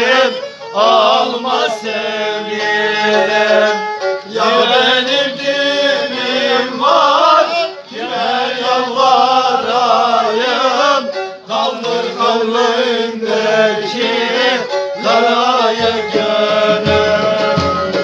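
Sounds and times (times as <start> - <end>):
men singing folk song: 0.0 - 18.0
bass drum beating: 15.8 - 18.0.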